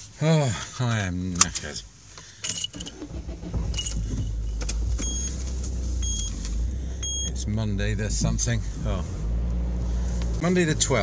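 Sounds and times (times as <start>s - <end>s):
car engine rumbling: 1.3s - 11.0s
dashboard chime beeping: 6.0s - 6.4s, 7.0s - 7.4s.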